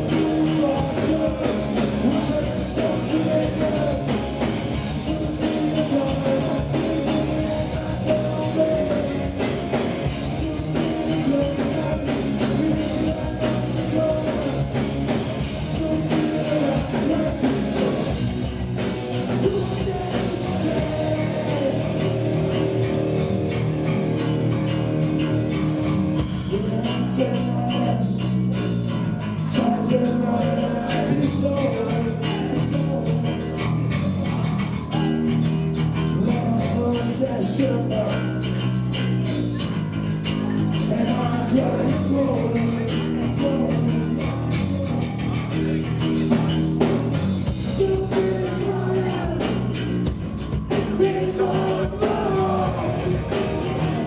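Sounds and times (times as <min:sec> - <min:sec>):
drum kit beat: 0:00.0 - 0:54.0
electric guitar chords: 0:00.0 - 0:54.0.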